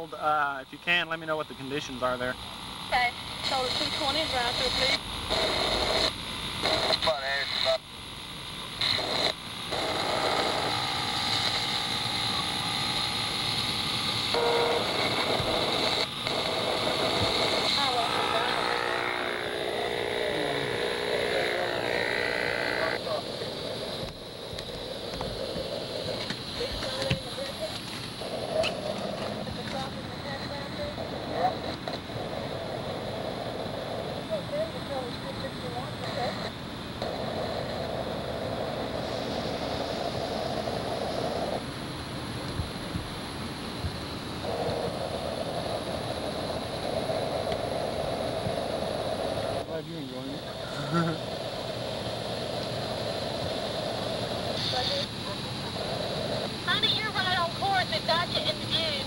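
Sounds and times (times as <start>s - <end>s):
radio hiss: 0.0s - 59.0s
voices over two-way radio: 2.9s - 7.8s, 14.4s - 23.5s, 26.2s - 27.9s, 34.2s - 36.5s, 54.6s - 55.7s, 56.7s - 59.0s
radio clicks: 14.3s - 19.5s.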